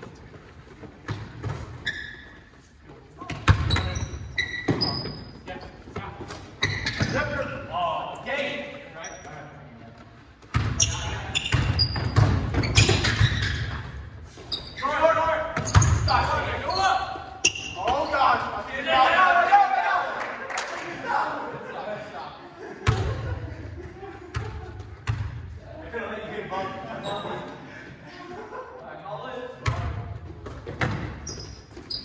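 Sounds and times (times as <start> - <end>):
sneaker squeaks: 0.0 - 7.6, 8.3 - 9.6, 10.2 - 18.5, 27.0 - 27.6, 30.4 - 32.0
basketball bouncing on wooden floor: 11.5 - 13.8
players calling out: 14.5 - 22.2.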